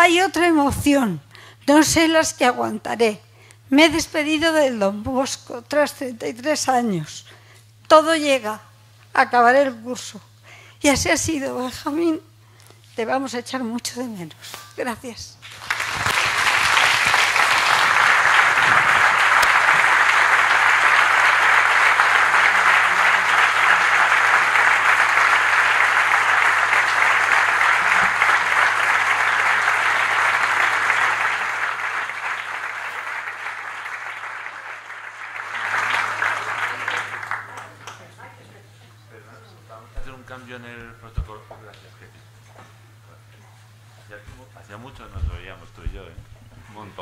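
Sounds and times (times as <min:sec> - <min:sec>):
audience applauding: 0:15.4 - 0:38.2.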